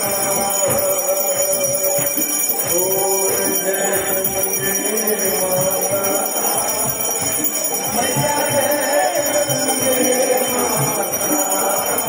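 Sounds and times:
devotional music: 0.0 - 12.0
many bells ringing: 0.0 - 12.0.

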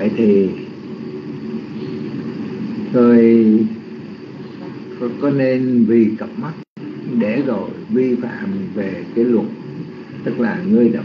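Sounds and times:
background hum: 0.0 - 11.0
steady hiss: 0.0 - 11.0.

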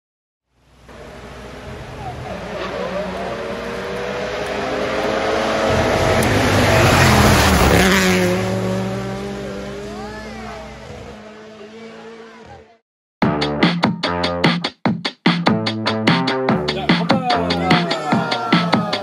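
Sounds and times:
tyres hissing on wet road: 0.6 - 7.8
car engine passing: 0.7 - 12.6.

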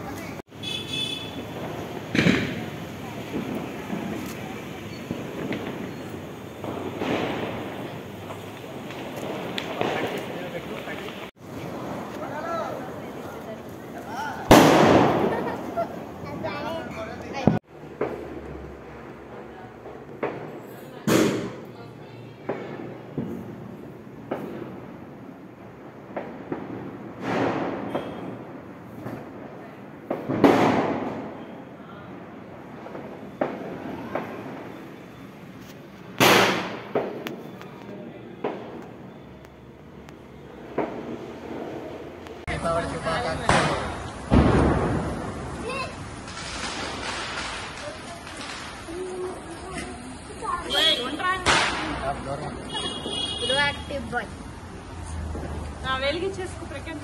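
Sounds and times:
firecracker bang: 0.1 - 35.0, 36.0 - 39.1, 40.2 - 54.1
sparkler fizzing: 1.2 - 18.4, 41.2 - 54.4.

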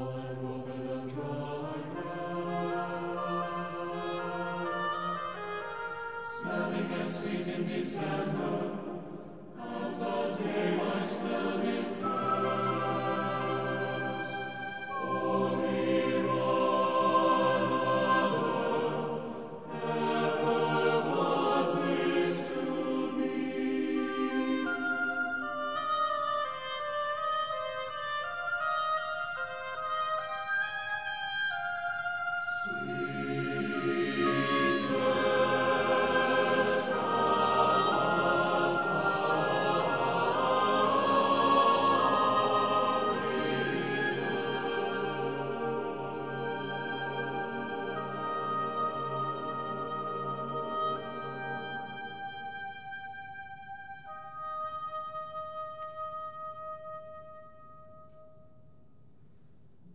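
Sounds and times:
choir singing: 0.0 - 56.8
oboe sustained note: 9.6 - 19.1, 22.6 - 58.6.

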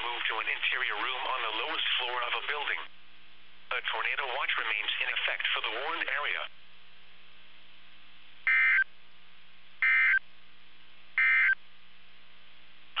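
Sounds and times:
radio hum and hiss: 0.0 - 13.0.

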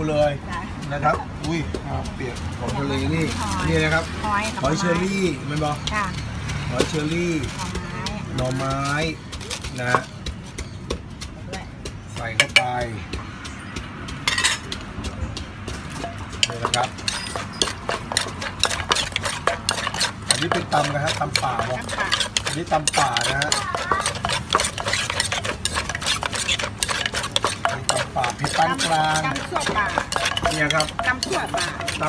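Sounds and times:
wooden pestle pounding in mortar: 0.0 - 32.0
kitchen utensils clinking: 14.2 - 14.7, 15.9 - 32.0
metal spoon scraping: 14.3 - 14.7, 15.9 - 32.0.

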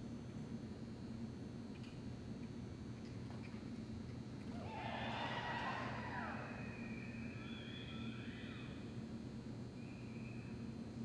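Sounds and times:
horse whinnying: 4.6 - 8.7.

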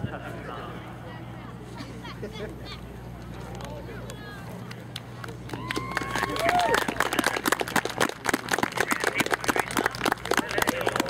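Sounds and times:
people clapping: 4.0 - 11.0.

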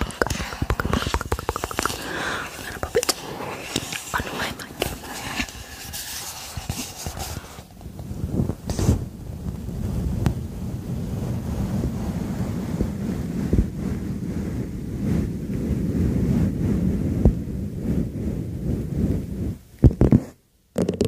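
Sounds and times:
hands rubbing wine glass: 0.0 - 7.8.

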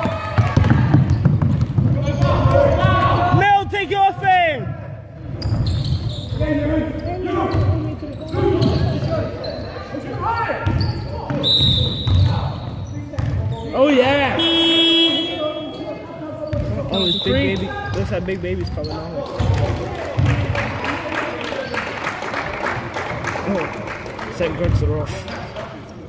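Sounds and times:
basketballs bouncing: 0.0 - 3.5, 10.6 - 12.5, 13.1 - 13.6, 16.5 - 20.7, 24.6 - 25.2
people shouting in a hall: 2.1 - 5.0.

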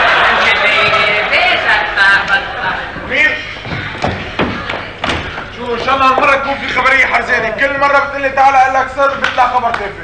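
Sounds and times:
actors' voices: 0.0 - 10.0
dull thuds on a stage: 3.6 - 6.2.

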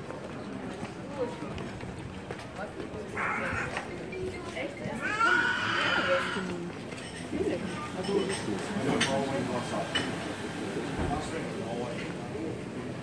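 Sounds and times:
people talking: 2.6 - 10.1.

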